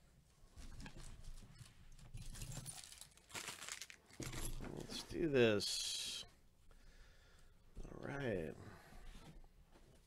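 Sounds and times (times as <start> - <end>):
foil wrappers crinkling: 2.6 - 4.4.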